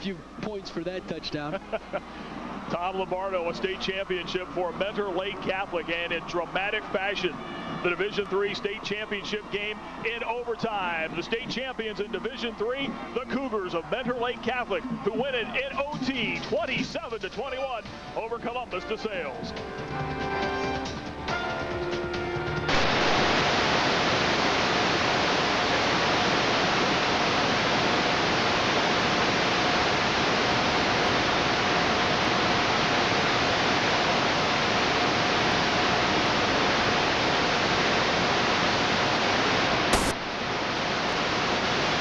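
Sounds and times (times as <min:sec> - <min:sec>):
loud static hiss: 0:00.0 - 0:19.9, 0:20.6 - 0:42.0
faint steady whine: 0:00.0 - 0:21.1, 0:22.6 - 0:42.0
broadcast music: 0:00.0 - 0:23.7, 0:40.0 - 0:40.2.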